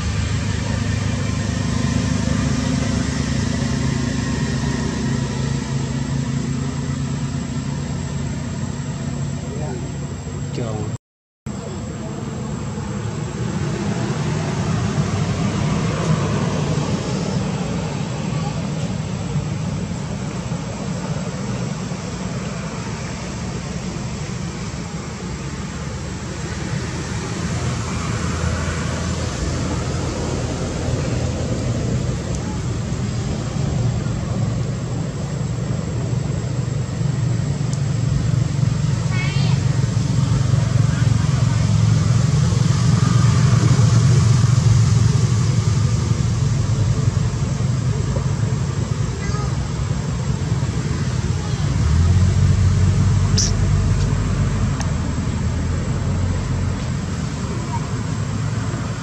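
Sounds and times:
road traffic rumble: 0.0 - 59.0
high chirping trill: 53.3 - 53.7.

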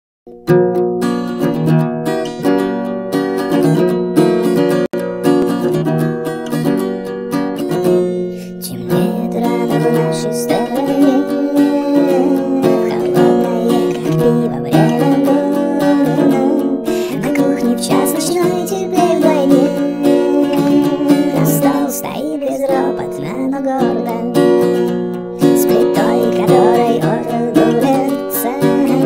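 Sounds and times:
strummed acoustic guitar: 0.3 - 29.0
person singing: 8.2 - 29.0.

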